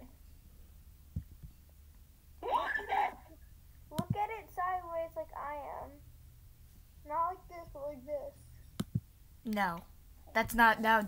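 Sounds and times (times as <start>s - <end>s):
low steady hum: 0.0s - 11.0s
child's voice: 3.9s - 6.0s, 7.1s - 8.5s.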